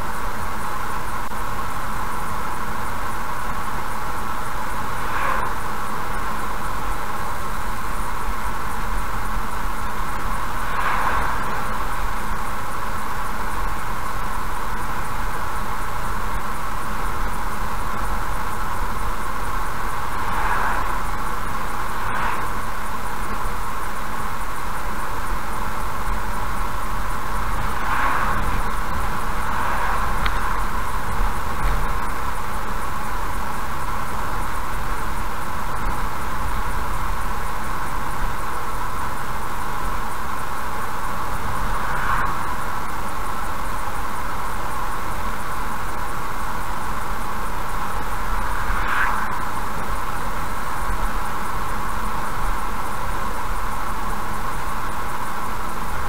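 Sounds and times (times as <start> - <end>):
car road and engine noise: 0.0 - 56.0
oncoming vehicles passing: 2.6 - 54.2.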